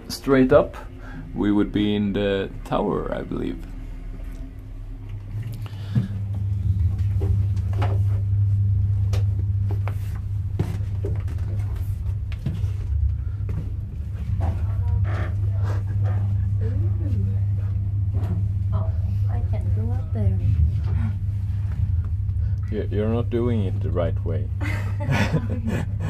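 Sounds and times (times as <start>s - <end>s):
low rumble: 0.0s - 26.0s
voices: 14.4s - 17.8s.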